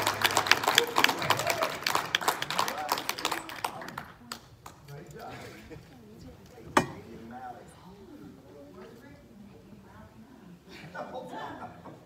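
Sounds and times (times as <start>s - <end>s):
congregation applauding: 0.0s - 4.7s.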